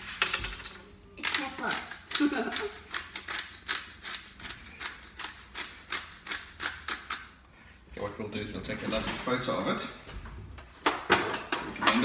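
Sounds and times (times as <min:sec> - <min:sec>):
pepper grinder clicking: 0:01.2 - 0:07.3.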